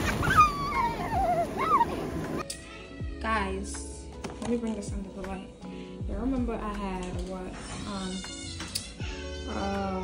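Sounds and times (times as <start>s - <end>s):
young child squealing: 0.0s - 2.1s.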